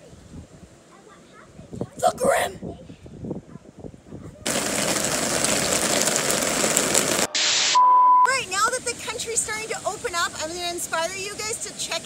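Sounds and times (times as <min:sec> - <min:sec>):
tv static hiss: 0:04.5 - 0:12.0
high test-pattern beep: 0:07.3 - 0:08.3.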